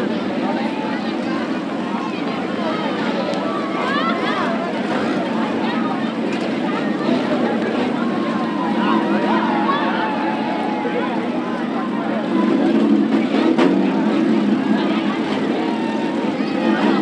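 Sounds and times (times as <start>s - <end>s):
car engines running: 0.0s - 17.0s
crowd chatter: 0.0s - 17.0s.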